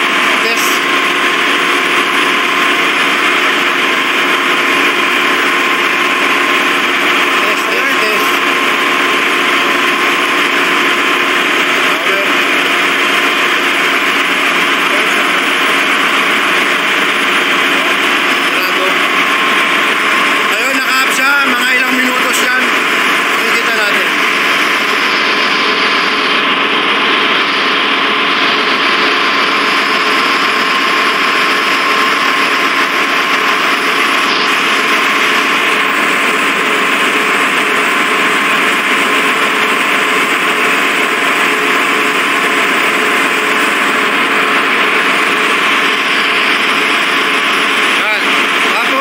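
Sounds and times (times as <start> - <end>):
engine room rushing drone: 0.0 - 49.0
thin steady whine: 0.0 - 49.0.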